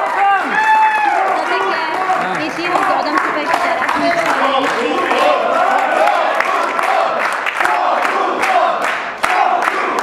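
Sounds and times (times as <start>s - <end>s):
people clapping along: 0.0s - 10.0s.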